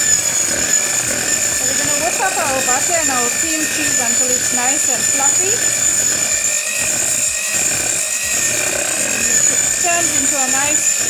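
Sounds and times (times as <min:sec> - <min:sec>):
electric hand mixer whining: 0:00.0 - 0:11.0.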